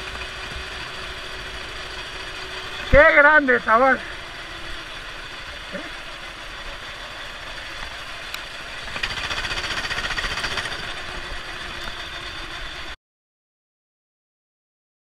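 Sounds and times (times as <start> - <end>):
kart engine running: 0.0 - 13.0.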